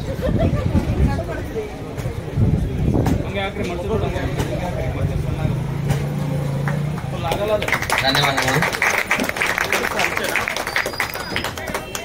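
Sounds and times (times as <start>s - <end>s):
people talking: 0.0s - 5.9s, 7.0s - 12.0s.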